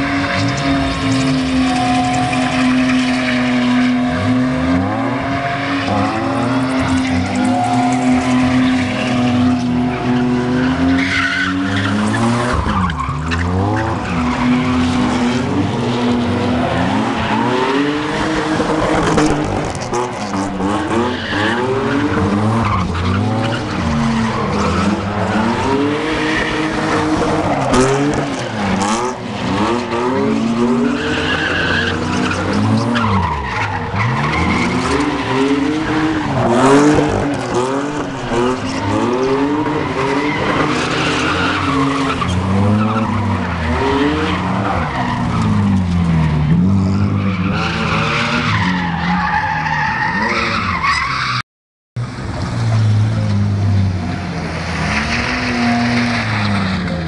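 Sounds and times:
car engine revving hard: 13.4 - 33.2, 33.8 - 48.6.

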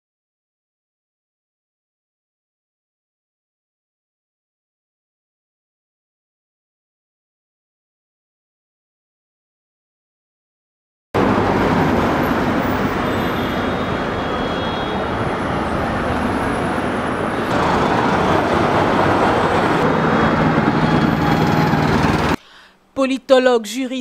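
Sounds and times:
road traffic: 11.2 - 22.6.

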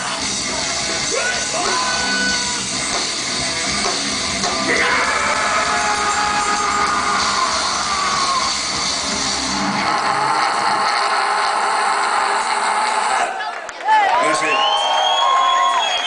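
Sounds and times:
bass and drums: 0.0 - 13.3.

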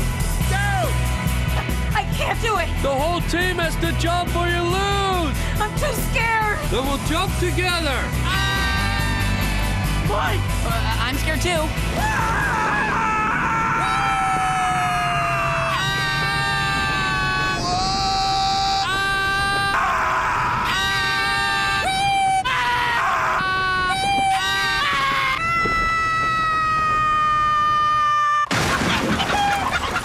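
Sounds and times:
man screaming: 8.2 - 9.8, 12.0 - 28.5
loud crash with clattering: 28.5 - 30.0.

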